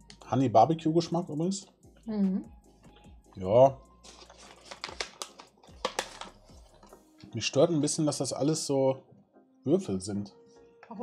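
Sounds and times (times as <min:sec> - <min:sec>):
snack pouch crinkling: 0:04.0 - 0:06.9.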